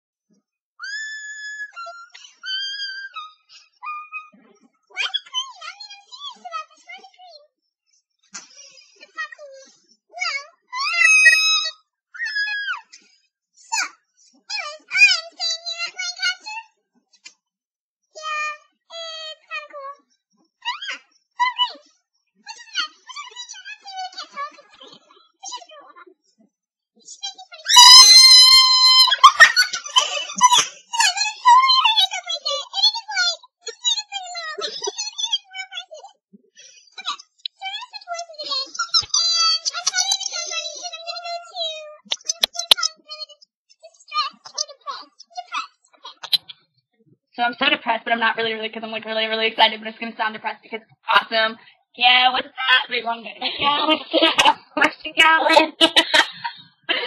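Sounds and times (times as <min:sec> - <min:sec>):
girl's squeaky voice sounds: 0:00.8 - 0:07.1, 0:08.7 - 0:13.0, 0:14.5 - 0:16.7, 0:18.2 - 0:20.0, 0:20.6 - 0:21.8, 0:27.2 - 0:36.2, 0:36.8 - 0:46.5
woman screaming: 0:27.7 - 0:29.4.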